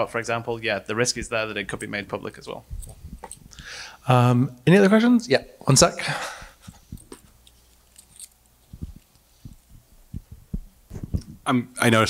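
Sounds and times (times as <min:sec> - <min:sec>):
low thumps: 0:02.6 - 0:03.6, 0:08.7 - 0:11.5
microphone handling clicks: 0:02.7 - 0:03.6, 0:08.7 - 0:11.4.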